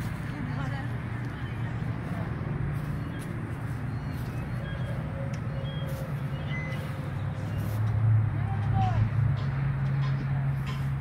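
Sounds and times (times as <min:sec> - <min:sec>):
bus diesel engine idling: 0:00.0 - 0:11.0.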